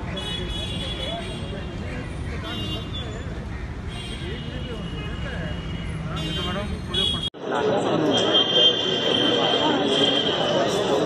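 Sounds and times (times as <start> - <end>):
traffic rumble: 0.0 - 11.0
people talking: 4.2 - 11.0.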